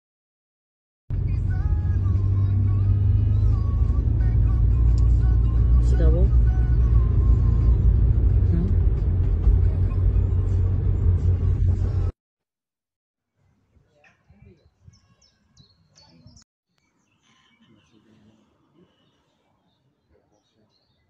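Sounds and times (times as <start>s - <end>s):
car engine and road noise: 1.1s - 12.2s.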